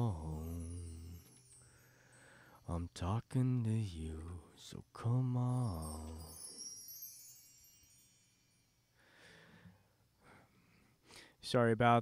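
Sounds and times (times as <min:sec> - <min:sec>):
bar chimes tinkling: 0:00.0 - 0:04.0, 0:04.7 - 0:09.6.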